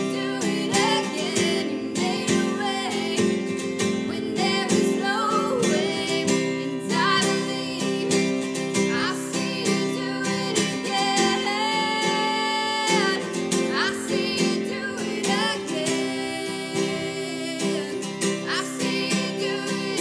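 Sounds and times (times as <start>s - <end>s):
acoustic guitar strumming: 0.0s - 20.0s
woman singing: 0.0s - 20.0s.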